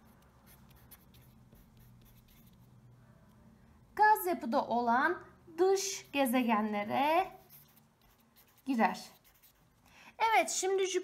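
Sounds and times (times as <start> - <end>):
marker pen writing on paper: 0.0 - 2.7, 7.3 - 9.7.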